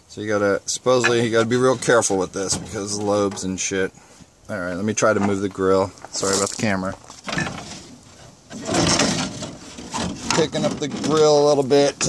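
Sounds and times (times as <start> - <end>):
plastic grille scraping and rustling: 0.9 - 3.7, 6.1 - 12.0.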